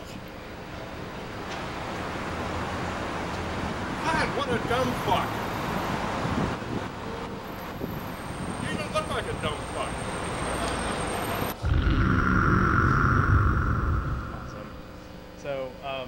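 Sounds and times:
street traffic over loudspeakers: 0.0s - 11.6s
loud rumbling noise: 11.5s - 15.4s.

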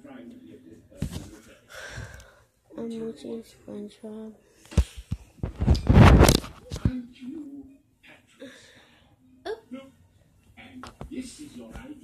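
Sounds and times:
faint cartoon dialogue from tv: 6.2s - 12.0s.

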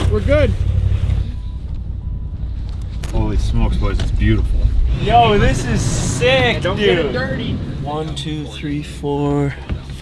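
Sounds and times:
wind buffeting microphone: 3.3s - 10.0s.

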